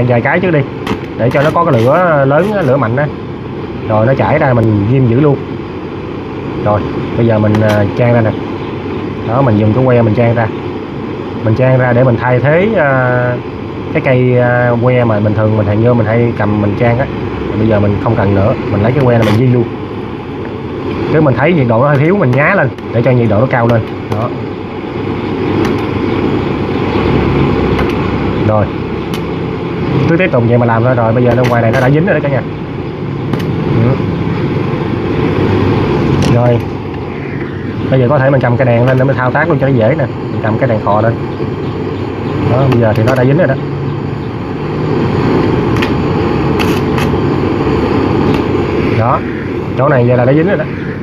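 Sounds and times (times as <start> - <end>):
welding arc crackling: 0.0 - 4.0, 16.1 - 51.0
blowtorch roaring: 0.0 - 51.0
gas torch flame rushing: 0.0 - 51.0
sharp pops: 0.8 - 2.8, 7.5 - 8.0, 19.0 - 19.5, 23.6 - 24.4, 25.5 - 26.0, 27.7 - 28.2, 29.0 - 29.4, 31.3 - 32.0, 33.3 - 33.6, 42.6 - 43.4, 45.7 - 47.2.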